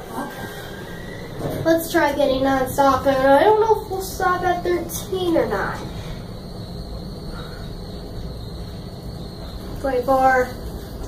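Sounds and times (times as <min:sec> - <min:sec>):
elevator running noise: 0:00.0 - 0:11.0.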